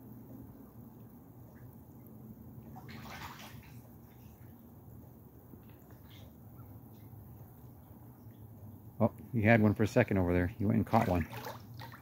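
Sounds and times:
steady low hum: 0:00.0 - 0:12.0
water splashing: 0:01.5 - 0:04.7, 0:10.6 - 0:12.0.

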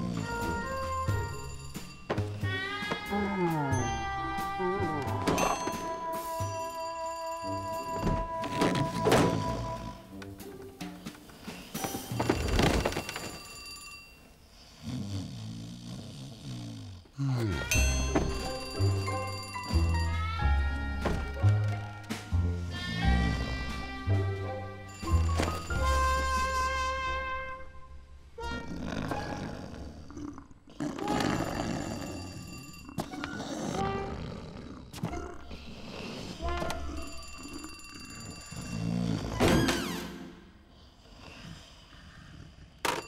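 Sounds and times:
cartoon bear snoring: 0:00.0 - 0:01.4, 0:08.6 - 0:10.2, 0:14.5 - 0:18.7, 0:28.4 - 0:39.9, 0:40.5 - 0:43.0.

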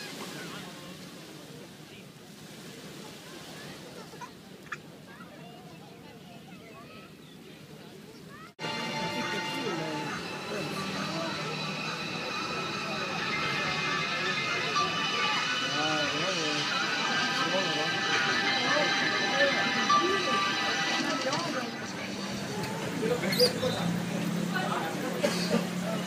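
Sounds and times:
television voices: 0:07.6 - 0:26.0
television music: 0:08.6 - 0:25.0.

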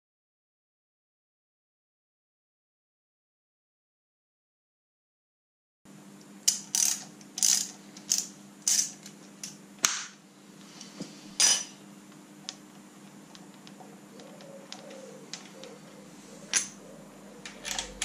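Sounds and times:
ratchet wrench clicking: 0:06.5 - 0:09.0.

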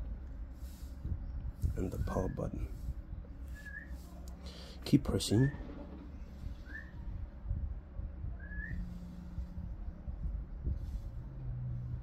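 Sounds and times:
rising whistle-like chirp: 0:03.5 - 0:04.0, 0:06.6 - 0:07.1, 0:08.3 - 0:09.0.

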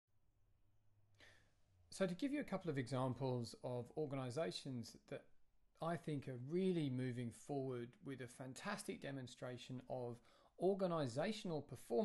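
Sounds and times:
man breathing in: 0:01.1 - 0:01.7, 0:10.2 - 0:10.6
man speaking: 0:01.9 - 0:12.0.

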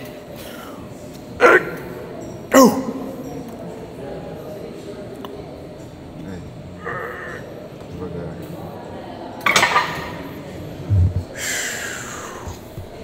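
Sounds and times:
background gym noise: 0:00.0 - 0:13.0.

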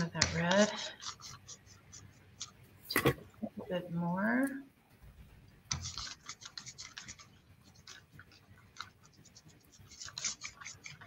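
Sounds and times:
palette knife scraping paint: 0:00.0 - 0:02.6, 0:05.7 - 0:11.0.

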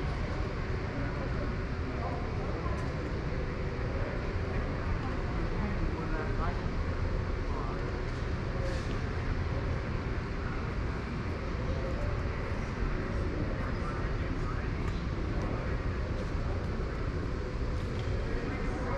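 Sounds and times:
faint indistinct voices: 0:00.0 - 0:18.9
low rumble of room tone: 0:00.0 - 0:18.9.

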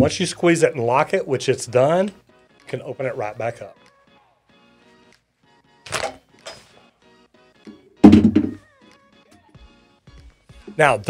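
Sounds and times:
soft background music: 0:00.0 - 0:11.0
heavy thunk of tool set down: 0:08.0 - 0:08.6.

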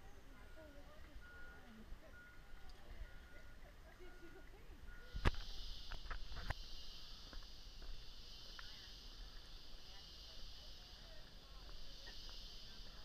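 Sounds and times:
faint distant voices: 0:00.0 - 0:13.0
high hiss or buzz: 0:05.1 - 0:13.0.

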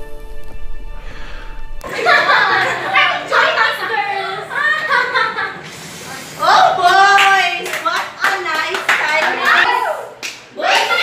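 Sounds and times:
girls calling out excitedly: 0:03.0 - 0:05.2, 0:09.1 - 0:11.0
hands clapping: 0:06.8 - 0:11.0.

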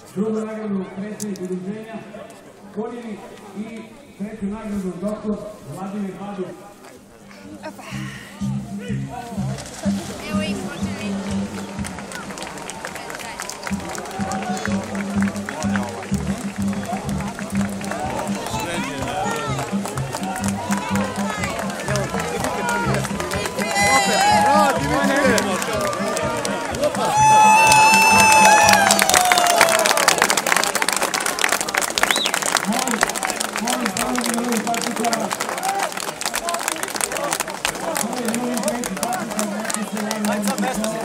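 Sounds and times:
music playing: 0:07.8 - 0:30.6
crowd shouting and cheering: 0:08.3 - 0:41.0
clapping: 0:11.3 - 0:41.0.

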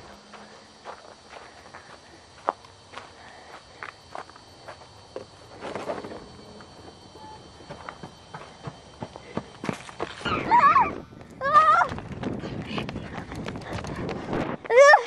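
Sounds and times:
light irregular footsteps: 0:11.9 - 0:14.8.

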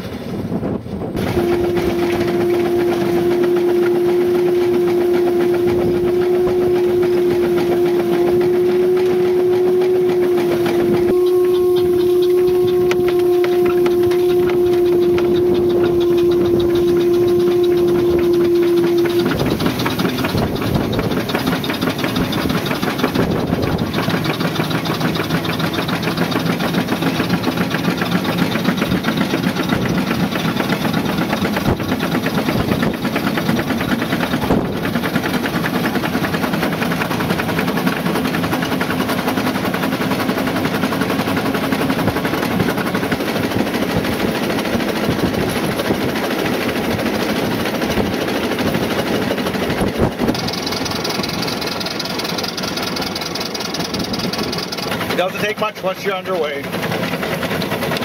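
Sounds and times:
road and wind noise: 0:00.0 - 0:01.4
steam engine running: 0:00.0 - 0:58.0.

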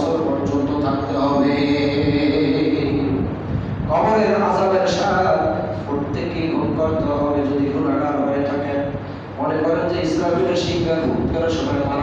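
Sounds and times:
man chanting melodically: 0:00.0 - 0:12.0.

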